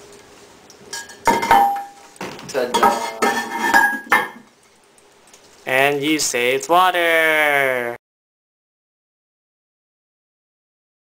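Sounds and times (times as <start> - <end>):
porcelain lid clinking and scraping: 2.7 - 4.4.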